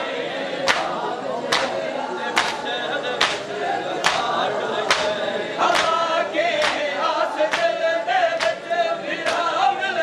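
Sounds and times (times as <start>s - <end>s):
men chanting a lament: 0.0s - 10.0s
hands slapping chests: 0.6s - 1.8s, 2.4s - 6.0s, 6.6s - 9.5s.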